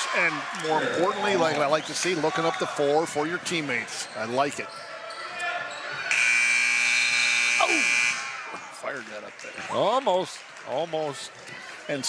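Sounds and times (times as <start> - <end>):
scoreboard horn buzzing: 6.1 - 8.4.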